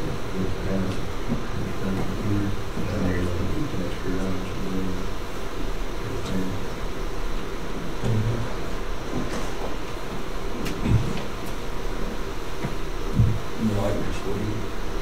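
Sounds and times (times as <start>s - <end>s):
constant low hum: 0.0s - 15.0s
faint low murmurs: 0.0s - 15.0s
steady hiss: 0.0s - 15.0s.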